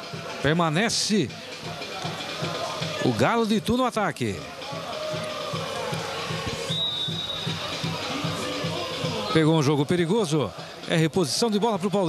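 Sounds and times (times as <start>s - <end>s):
stadium ambience: 0.0s - 12.0s
steady drum beat: 0.0s - 12.0s
referee's whistle blast: 6.4s - 9.4s.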